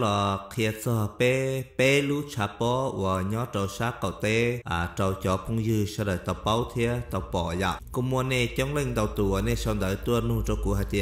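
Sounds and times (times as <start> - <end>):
man narrating in chant-like syllables: 0.0 - 11.0.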